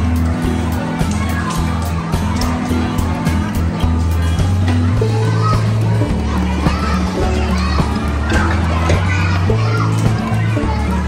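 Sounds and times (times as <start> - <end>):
background music with bass line: 0.0 - 11.0
children's voices chattering: 0.0 - 11.0.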